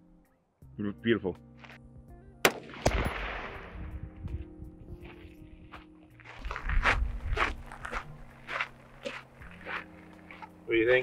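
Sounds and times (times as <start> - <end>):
rifle shot echo: 2.4 - 3.8
footsteps on gravel: 5.0 - 10.6.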